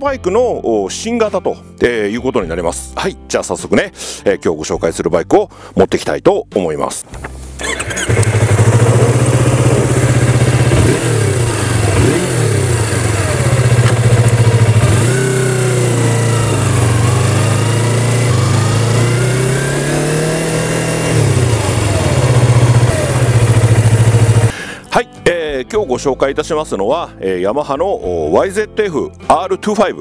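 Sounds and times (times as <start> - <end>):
motorcycle engine revving: 7.6 - 24.5.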